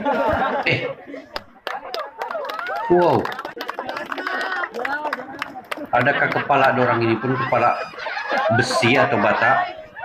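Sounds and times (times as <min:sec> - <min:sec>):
outdoor crowd voices: 0:00.0 - 0:10.0.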